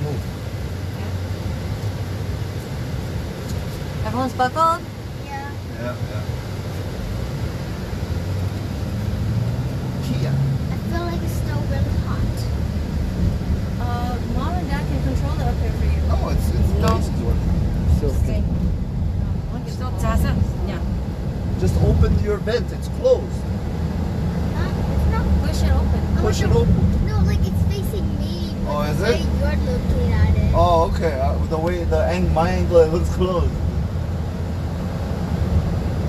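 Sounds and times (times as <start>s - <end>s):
car road and engine rumble: 0.0s - 36.0s.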